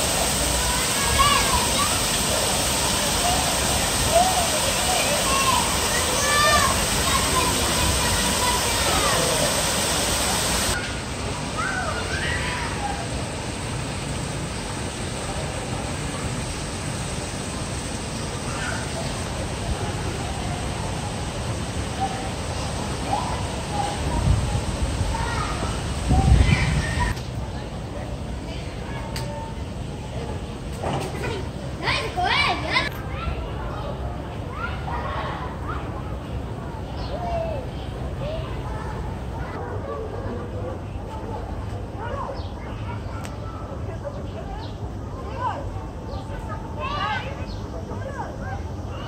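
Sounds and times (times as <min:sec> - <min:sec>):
children calling out at play: 0:00.0 - 0:13.3, 0:18.4 - 0:27.2, 0:31.1 - 0:49.0
waterfall rushing into pool: 0:00.0 - 0:27.2
low background noise: 0:00.0 - 0:49.0.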